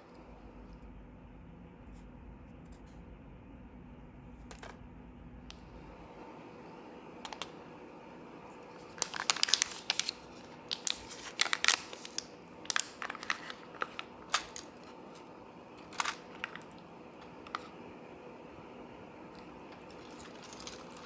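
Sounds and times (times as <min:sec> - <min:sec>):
foil packet crinkling: 0:08.6 - 0:17.7, 0:19.4 - 0:21.0.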